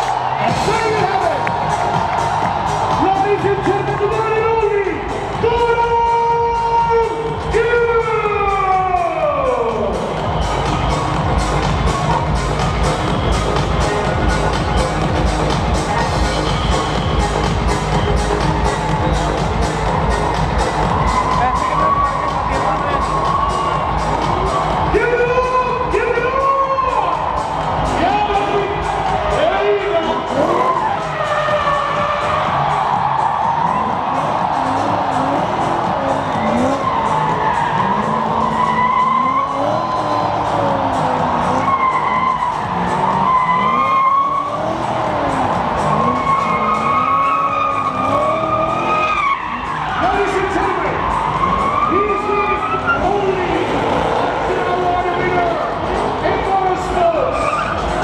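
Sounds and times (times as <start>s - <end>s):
car engine revving: 27.1s - 58.0s
tyres screeching: 34.6s - 54.6s.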